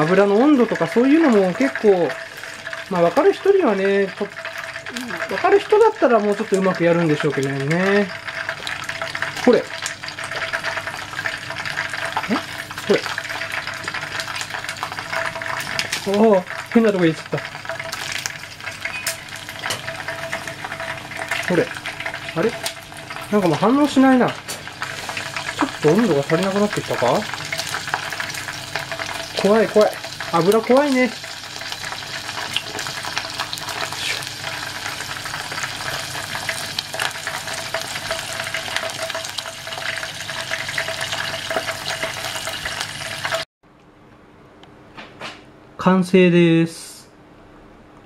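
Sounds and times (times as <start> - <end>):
frying in hot oil sizzling: 0.0 - 43.5
oil crackling and popping: 0.0 - 43.5.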